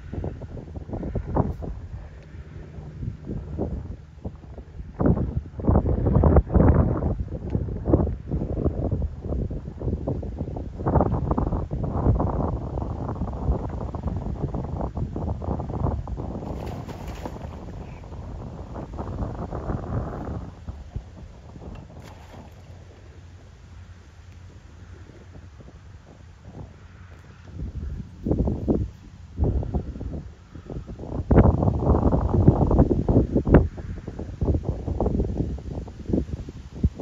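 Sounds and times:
wind buffeting microphone: 0.0 - 37.0.

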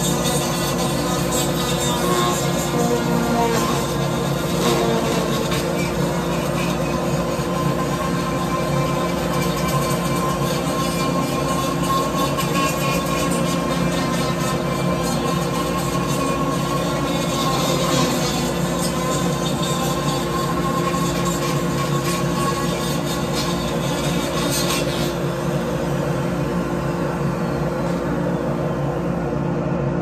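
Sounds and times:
rotary grinding tool whining: 0.0 - 28.9.

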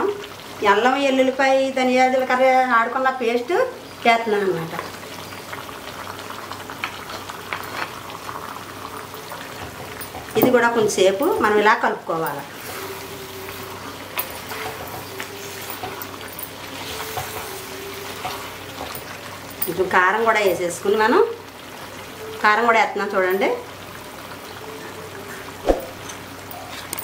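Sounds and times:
curry sizzling and bubbling in a pot: 0.0 - 27.0.

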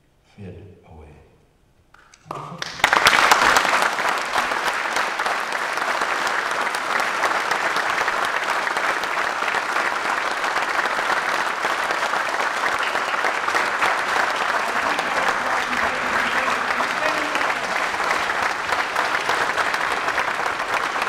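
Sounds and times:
audience applauding: 2.0 - 21.0.

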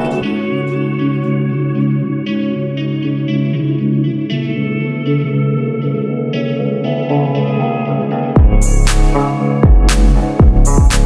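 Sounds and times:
plucked guitar melody: 0.0 - 11.0.

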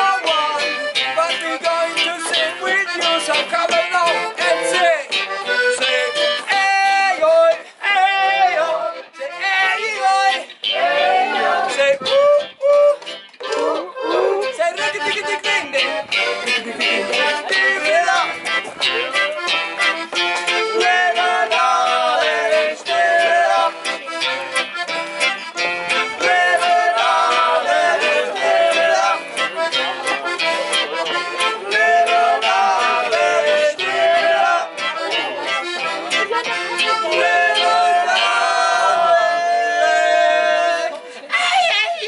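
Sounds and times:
accordion: 0.0 - 41.9
nylon-string guitar: 0.0 - 42.0.

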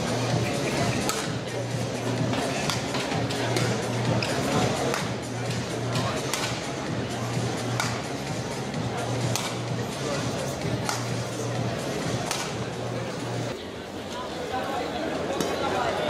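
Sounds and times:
crowd murmur: 0.0 - 16.0
racket striking shuttlecock: 1.0 - 1.3, 2.6 - 3.7, 6.3 - 6.6, 7.8 - 8.0, 9.3 - 9.6, 10.9 - 11.1, 12.2 - 12.6.

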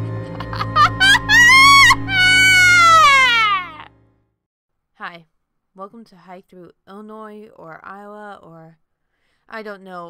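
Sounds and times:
background music: 0.0 - 3.9
evil laugh: 0.2 - 3.9.

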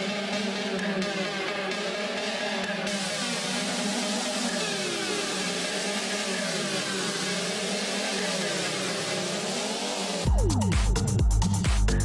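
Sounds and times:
sustained synth drone: 0.0 - 11.1
hiss: 1.7 - 10.3.

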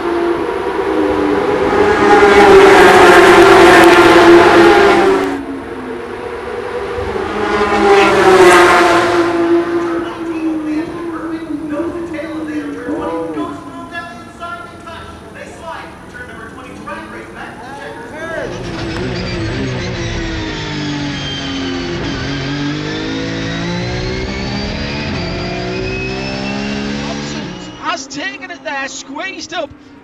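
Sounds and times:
race car engine from cockpit: 0.0 - 30.0.

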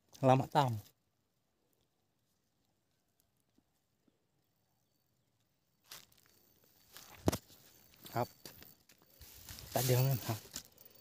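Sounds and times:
faint rustling: 5.8 - 11.0.

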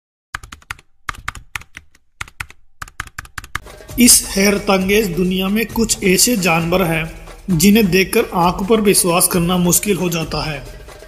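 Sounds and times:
keystroke clicks: 0.4 - 3.6.

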